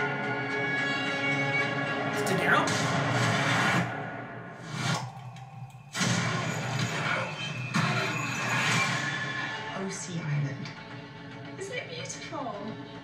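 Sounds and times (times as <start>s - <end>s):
dramatic trailer music: 0.0s - 13.0s
loud hit: 5.8s - 9.4s.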